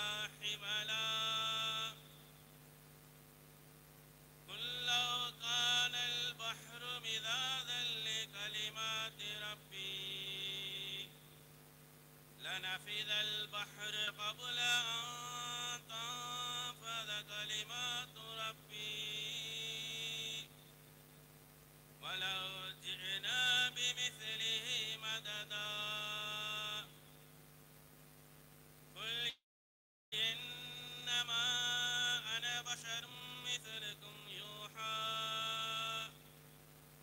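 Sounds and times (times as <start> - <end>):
man chanting through loudspeaker: 0.0 - 2.2, 4.5 - 11.1, 12.4 - 20.5, 22.0 - 26.9, 29.0 - 29.4, 30.2 - 36.2
steady low hum: 0.0 - 29.3, 30.2 - 37.0.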